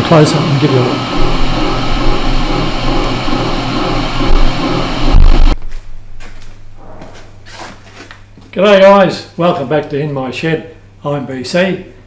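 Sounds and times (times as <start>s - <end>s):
milling machine churning: 0.0s - 5.6s
faint hum: 0.6s - 12.0s
machine stopping with low thump: 1.0s - 5.6s.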